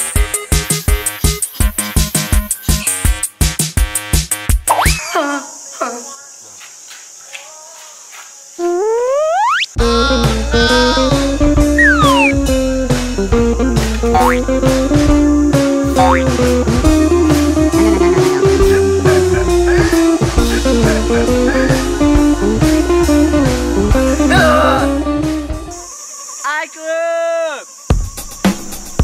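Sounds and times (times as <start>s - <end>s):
cartoon sound effect tones: 4.7s - 5.1s, 8.6s - 12.4s, 14.2s - 14.4s, 16.0s - 16.3s
comedic guitar music: 9.8s - 25.9s.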